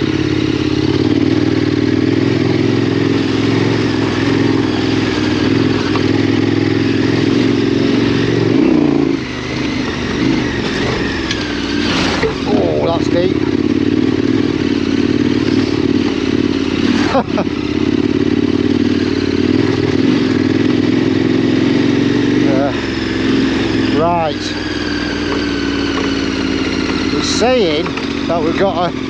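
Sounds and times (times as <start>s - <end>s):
motorcycle engine at low revs: 0.0s - 29.0s.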